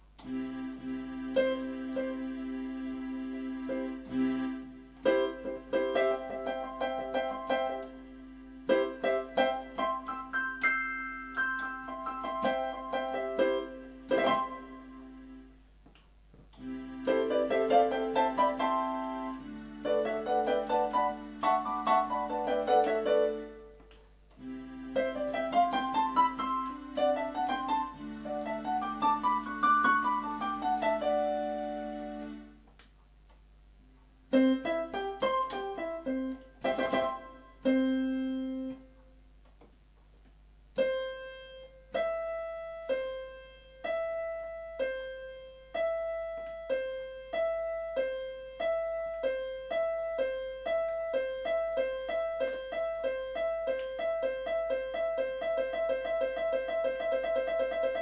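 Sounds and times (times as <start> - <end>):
electronic keyboard piano voice: 0.0 - 15.6, 16.5 - 32.6, 34.3 - 39.0, 40.7 - 58.0.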